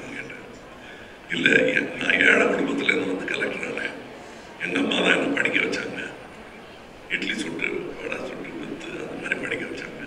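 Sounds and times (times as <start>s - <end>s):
man speaking into a microphone: 0.0s - 0.6s, 1.3s - 6.2s, 7.1s - 10.0s.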